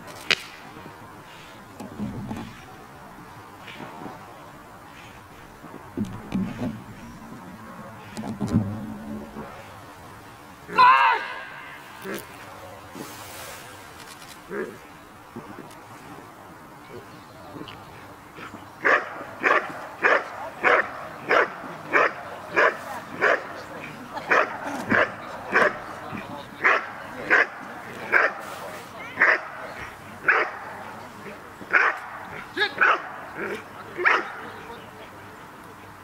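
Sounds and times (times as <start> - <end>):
dog barking: 18.8 - 23.5, 29.2 - 29.6, 30.3 - 30.6, 31.7 - 32.2, 32.8 - 33.1, 34.0 - 34.3.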